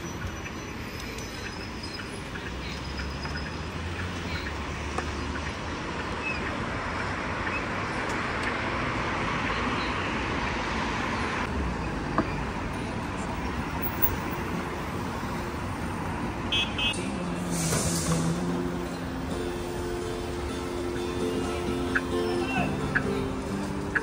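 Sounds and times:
passing cars and scooters: 0.0 - 24.0
loud hiss: 17.4 - 18.6.

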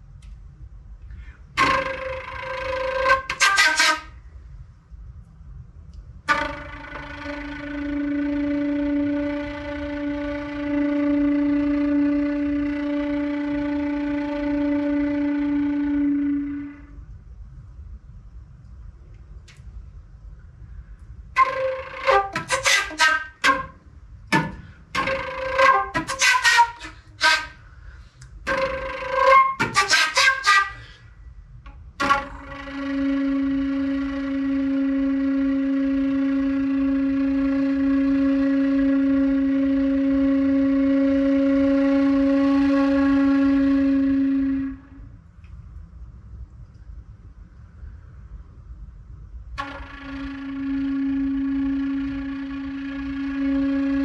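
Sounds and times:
solo flute playing: 1.6 - 4.3, 6.3 - 17.0, 21.4 - 31.1, 32.0 - 45.1, 49.6 - 54.0.

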